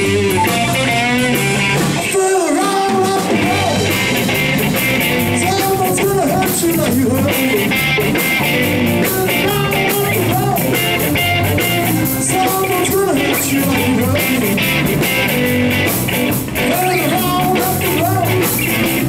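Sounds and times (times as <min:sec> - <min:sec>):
drum kit: 0:00.0 - 0:19.0
electric bass: 0:00.0 - 0:19.0
electric guitar: 0:00.0 - 0:19.0.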